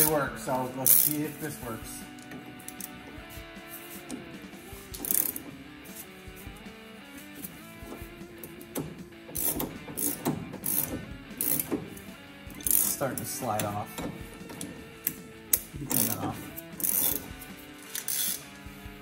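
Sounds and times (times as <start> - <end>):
ratchet wrench clicking: 0.0 - 1.5, 2.2 - 18.6
background music: 0.0 - 19.0.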